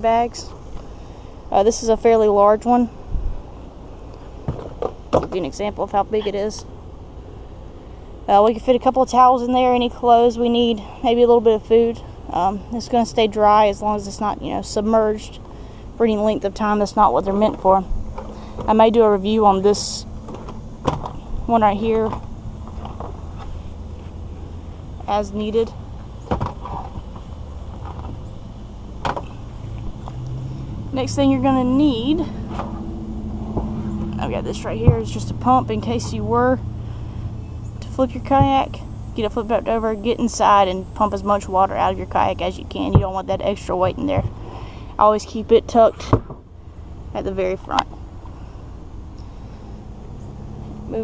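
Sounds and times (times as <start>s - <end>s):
low outdoor rumble: 0.0s - 51.0s.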